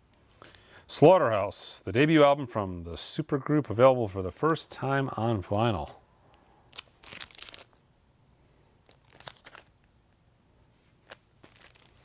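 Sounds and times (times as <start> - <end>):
plastic and cardboard crinkling: 6.8 - 7.8, 8.8 - 9.8, 11.0 - 12.0.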